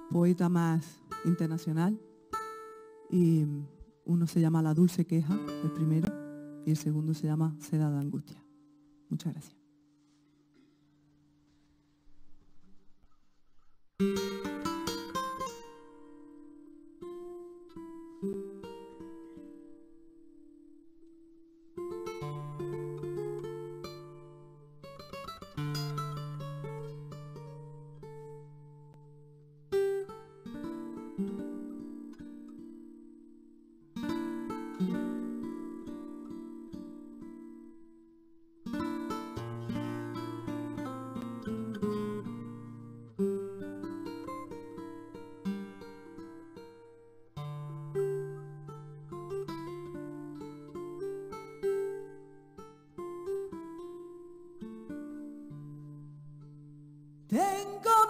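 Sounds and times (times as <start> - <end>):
flamenco guitar strumming: 0.0 - 11.6, 14.0 - 58.0.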